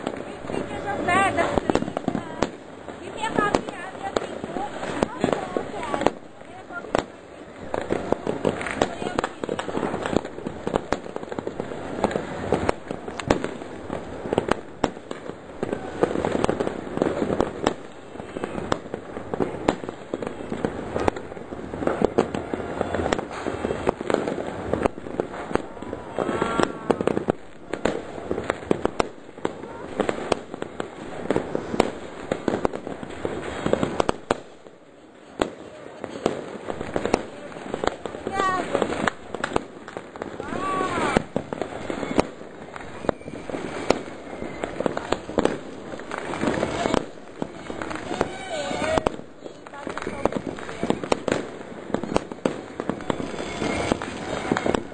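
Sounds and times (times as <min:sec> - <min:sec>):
fireworks and firecrackers banging: 0:00.0 - 0:54.9.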